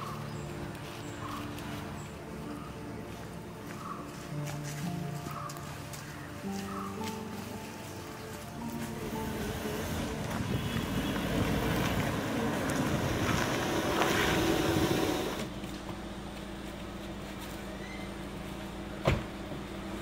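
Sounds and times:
background music with held notes: 0.0 - 16.6
car engine and tyre noise: 0.0 - 20.0.

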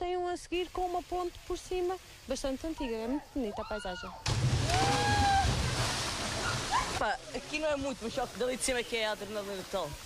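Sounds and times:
loud splash: 4.2 - 7.0
churning water: 4.2 - 10.0.

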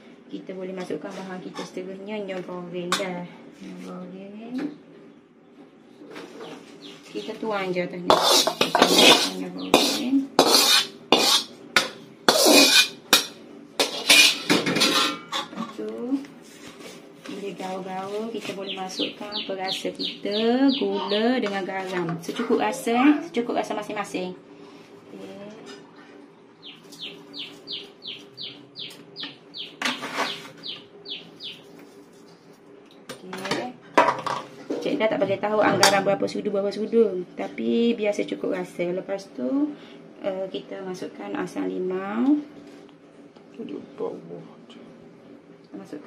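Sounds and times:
metal spoon scraping metal plate: 8.1 - 15.6, 29.8 - 30.6
bird calling with descending notes: 18.6 - 21.4, 26.6 - 31.6.

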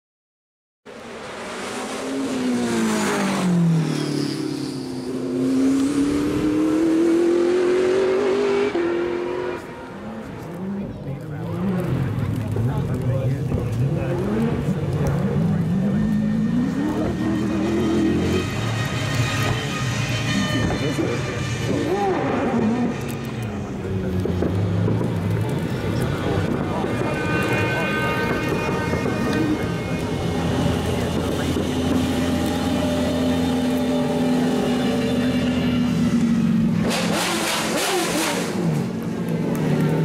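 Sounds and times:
race car engine revving: 1.1 - 40.0.

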